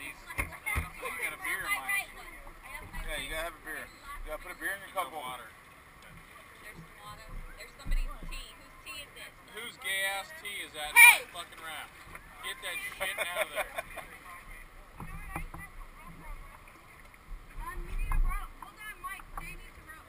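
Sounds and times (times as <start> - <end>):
people talking and calling out: 0.0 - 20.0.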